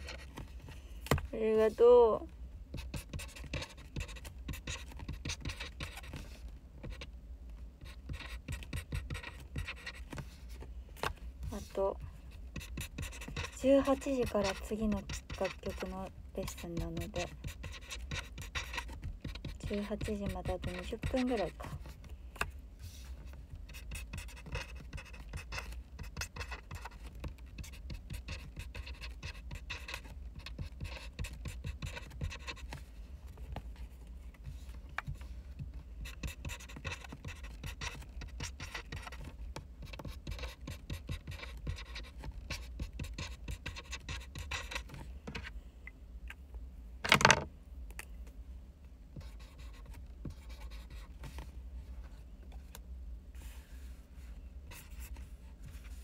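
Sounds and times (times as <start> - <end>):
pen scratching on paper: 0.0 - 0.4, 2.7 - 7.1, 7.8 - 10.3, 11.5 - 22.0, 22.9 - 32.8, 35.1 - 45.0, 49.2 - 51.4.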